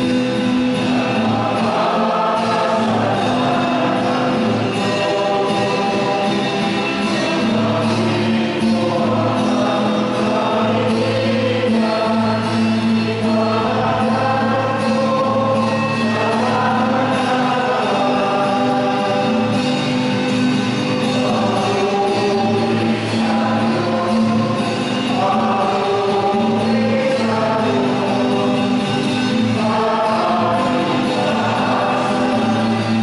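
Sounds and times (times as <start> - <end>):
church choir singing a hymn: 0.0 - 33.0.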